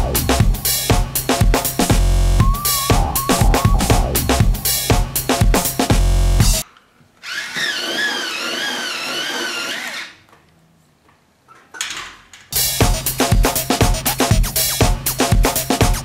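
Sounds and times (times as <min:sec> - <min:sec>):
electric pencil sharpener whining: 0:07.2 - 0:10.2.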